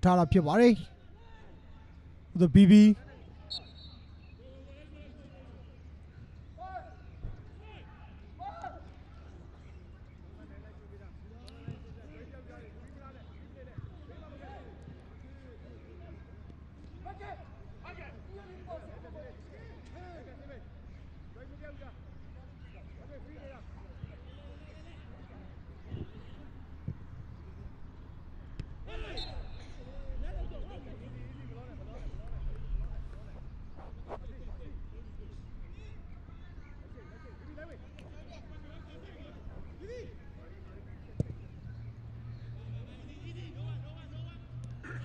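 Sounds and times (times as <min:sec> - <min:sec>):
low stadium hum: 0:00.0 - 0:45.0
ball kick: 0:41.2 - 0:41.4.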